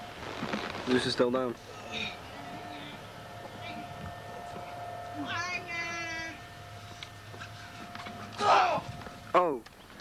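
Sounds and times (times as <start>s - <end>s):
faint steady hum: 0.0s - 10.0s
high drawn-out cry: 8.3s - 8.9s.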